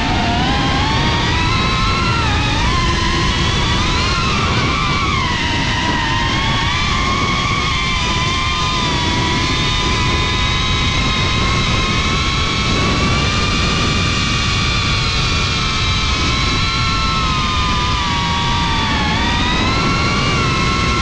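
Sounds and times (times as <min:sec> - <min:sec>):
drone motors whining: 0:00.0 - 0:21.0
wind on microphone: 0:00.0 - 0:21.0.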